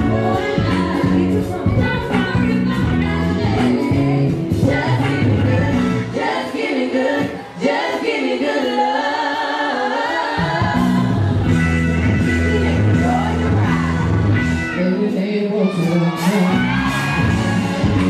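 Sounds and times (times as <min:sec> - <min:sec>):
woman singing: 0:00.0 - 0:11.6, 0:12.2 - 0:17.2
r and b song through pa: 0:00.0 - 0:18.0.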